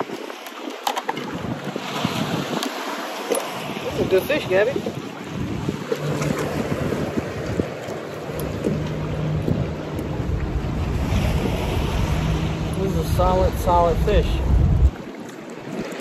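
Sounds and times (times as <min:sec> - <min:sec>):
water lapping around kayak: 0:00.0 - 0:16.0
wind buffeting microphone: 0:01.2 - 0:16.0.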